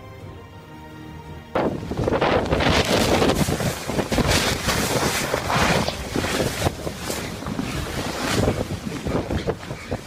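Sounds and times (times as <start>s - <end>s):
wind buffeting microphone: 1.5s - 10.0s.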